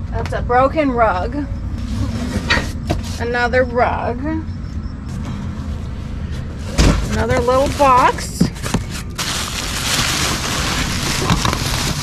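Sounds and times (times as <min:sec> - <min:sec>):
plastic bag crinkling: 0:07.3 - 0:12.0.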